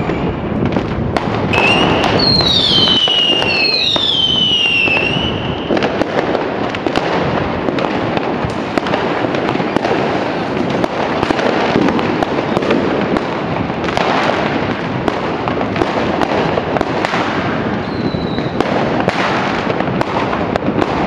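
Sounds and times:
whistling rockets: 0.0 - 7.2, 7.8 - 14.5, 15.8 - 21.0
firecracker bangs and crackling: 0.0 - 21.0.

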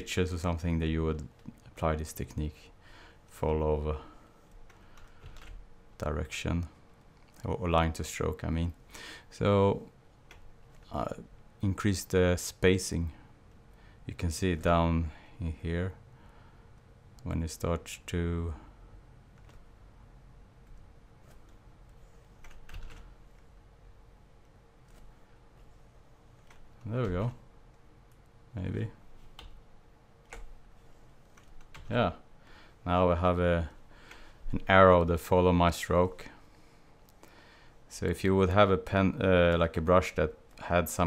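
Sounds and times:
computer keyboard key presses: 4.7 - 5.6, 22.4 - 23.1.

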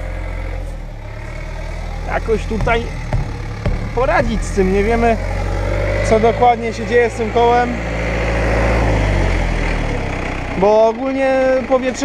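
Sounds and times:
tractor engine idling: 0.0 - 5.6, 10.0 - 12.0.

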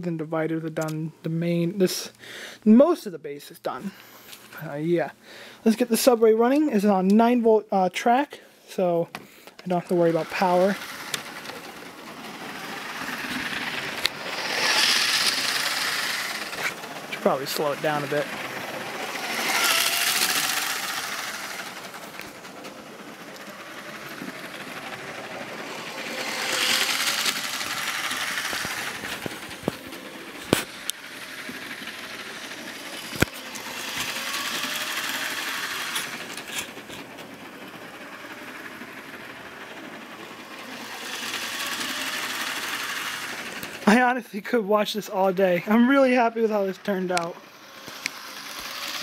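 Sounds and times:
toy train motor whirring on track: 8.8 - 44.1, 44.9 - 49.0.

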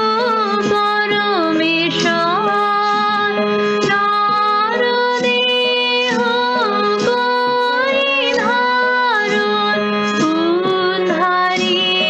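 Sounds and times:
held instrumental notes: 0.0 - 12.0
woman singing devotional song: 0.0 - 12.0.

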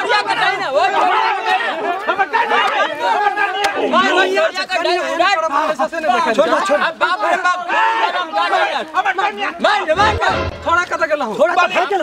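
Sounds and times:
people shouting and talking: 0.0 - 12.0.

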